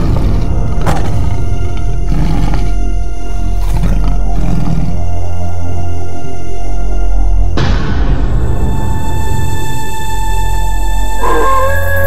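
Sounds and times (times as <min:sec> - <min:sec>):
beast roar: 0:00.0 - 0:05.6
low rumbling drone: 0:00.0 - 0:12.0.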